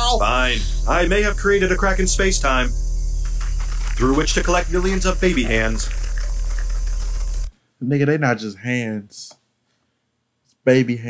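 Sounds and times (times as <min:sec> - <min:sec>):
man speaking: 0:00.0 - 0:02.7, 0:04.0 - 0:06.0, 0:07.8 - 0:09.4, 0:10.6 - 0:11.0
deep hum with hiss: 0:00.0 - 0:07.5.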